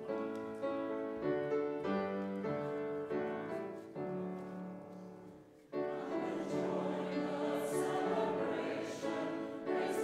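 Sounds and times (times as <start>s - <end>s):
piano playing hymn chords: 5.8s - 10.0s.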